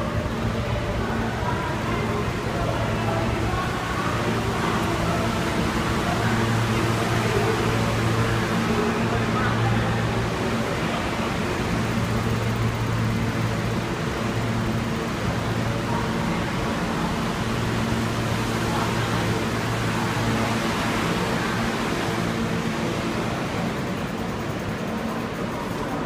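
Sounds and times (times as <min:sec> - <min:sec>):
subway train hiss and drone: 0:00.0 - 0:26.0.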